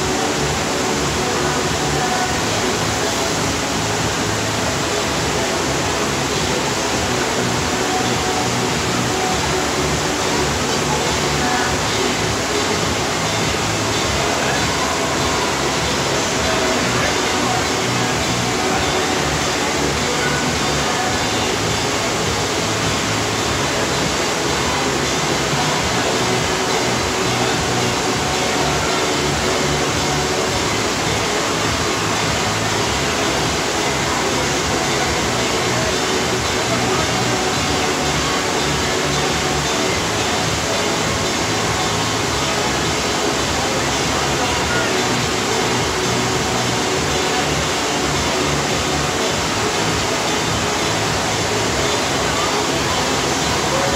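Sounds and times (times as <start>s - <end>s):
faint music: 0.0s - 53.9s
faint voices: 0.0s - 53.9s
loud rush of water: 0.0s - 53.9s.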